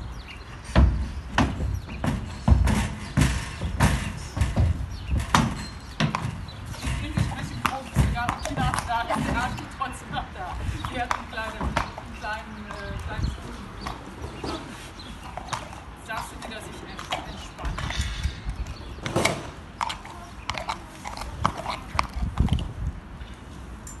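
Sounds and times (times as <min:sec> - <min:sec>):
hooves on wet concrete: 0:00.0 - 0:23.2
horse hooves on ramp: 0:00.0 - 0:23.3.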